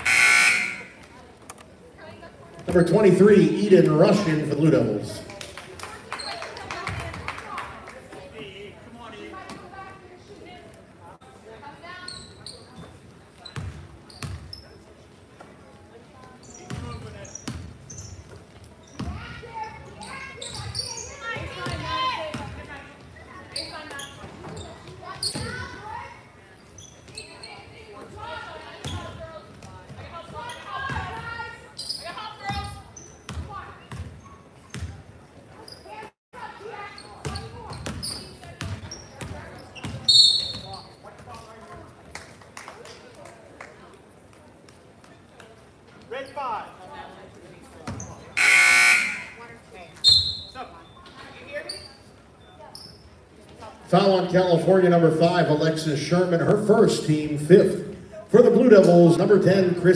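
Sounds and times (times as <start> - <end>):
referee's whistle blast: 0.0 - 1.0, 48.4 - 49.4
echoing voices in a gym: 0.0 - 59.9
basketball bouncing on hardwood floor: 16.7 - 17.7.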